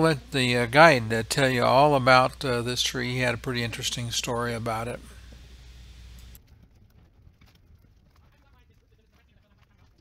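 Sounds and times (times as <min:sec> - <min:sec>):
low steady hum: 0:00.0 - 0:09.1.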